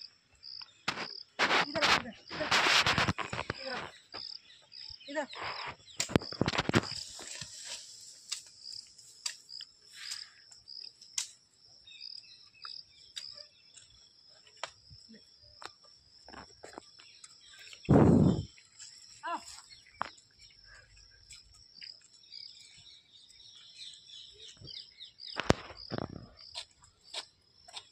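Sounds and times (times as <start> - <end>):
insects chirping: 0.0 - 27.9
bird chirps: 16.6 - 25.9.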